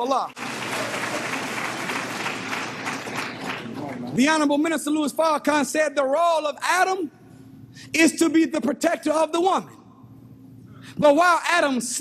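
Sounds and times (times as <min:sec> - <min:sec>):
audience applauding: 0:00.3 - 0:04.2.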